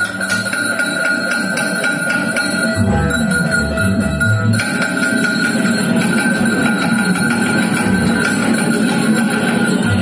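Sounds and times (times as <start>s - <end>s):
double bass and guitars improvising: 2.8s - 4.6s.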